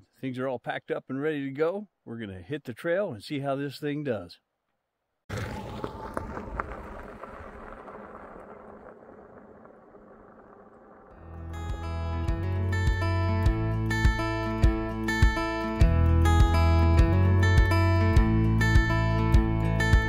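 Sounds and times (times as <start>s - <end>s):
bike tyres crunching on gravel: 5.3s - 11.8s
acoustic guitar music with beat: 11.3s - 20.0s.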